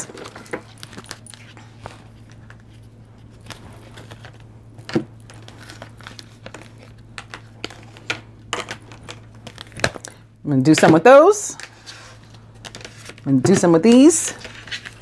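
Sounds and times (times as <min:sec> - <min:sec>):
cards rustling: 0:00.0 - 0:10.2, 0:11.5 - 0:15.0
low electrical hum: 0:00.0 - 0:15.0.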